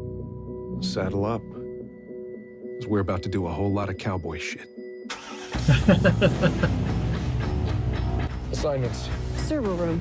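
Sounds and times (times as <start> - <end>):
car starter cranking: 5.1 - 6.8.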